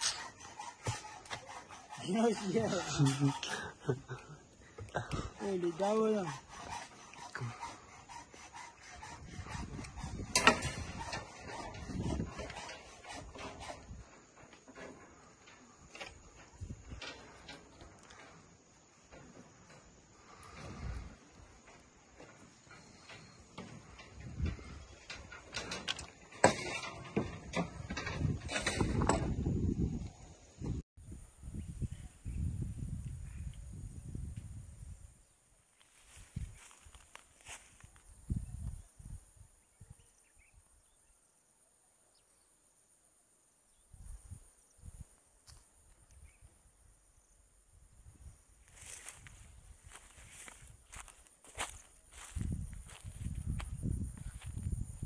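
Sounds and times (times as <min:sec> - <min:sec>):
wind rumbling on microphone: 0:08.8 - 0:14.2, 0:20.2 - 0:21.3, 0:23.8 - 0:26.1, 0:26.8 - 0:35.3, 0:35.9 - 0:40.6, 0:43.8 - 0:45.2, 0:47.8 - 0:55.0.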